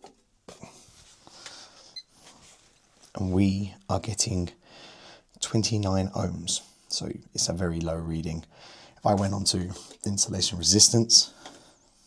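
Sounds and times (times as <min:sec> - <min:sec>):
soft rustling: 0:00.6 - 0:03.2.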